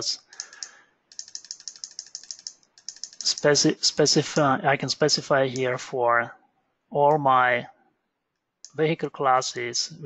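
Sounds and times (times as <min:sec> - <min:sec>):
keyboard and mouse clicks: 0:00.2 - 0:04.5.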